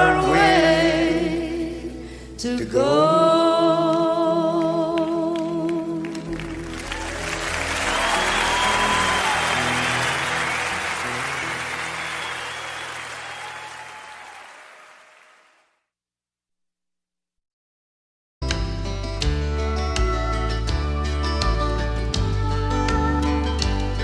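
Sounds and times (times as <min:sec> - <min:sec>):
person singing: 0:00.0 - 0:09.2
audience applause: 0:06.0 - 0:15.7
folk band playing: 0:19.4 - 0:24.0.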